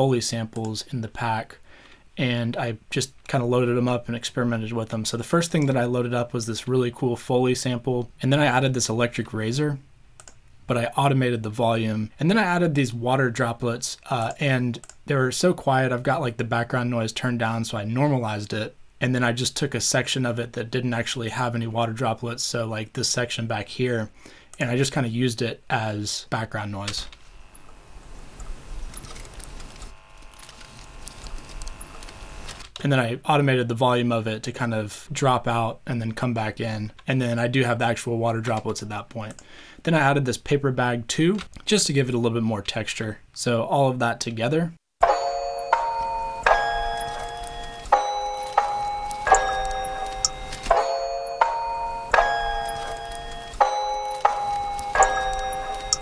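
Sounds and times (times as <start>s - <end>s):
low hum and hiss: 0.0s - 44.8s
small clicks: 10.2s - 10.5s, 46.4s - 50.8s, 51.4s - 56.0s
faint electric razor drone: 29.8s - 32.6s
ringing bell notes: 45.0s - 56.0s.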